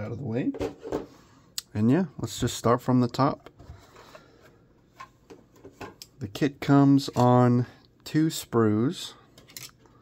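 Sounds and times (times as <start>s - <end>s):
plastic stand handling noise: 4.9s - 6.1s.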